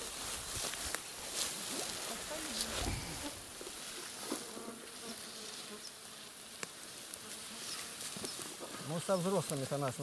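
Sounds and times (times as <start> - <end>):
flying insect buzzing: 1.0 - 8.8.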